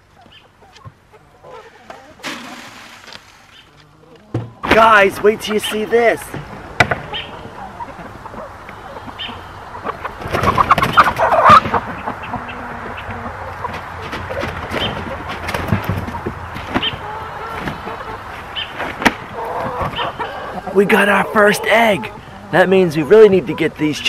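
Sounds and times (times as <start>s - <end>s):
chickens clucking and squawking: 0.0s - 24.0s
knocks and rustling in pen: 13.6s - 17.9s.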